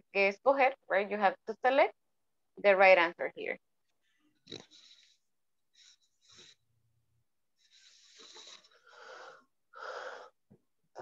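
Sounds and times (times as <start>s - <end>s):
faint airy breaths: 4.0s - 6.8s, 7.6s - 10.5s.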